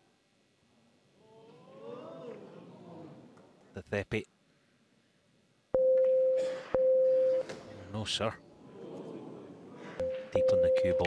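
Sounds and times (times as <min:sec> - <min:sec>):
electronic warning beeps: 0:05.8 - 0:07.5, 0:10.0 - 0:11.0.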